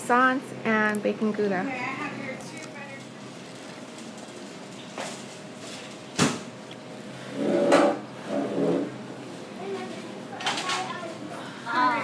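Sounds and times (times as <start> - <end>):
cafe background hum: 0.0 - 12.0.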